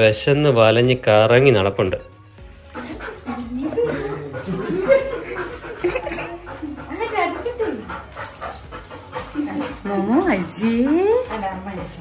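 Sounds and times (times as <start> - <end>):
voices: 2.8 - 8.6, 9.2 - 12.0.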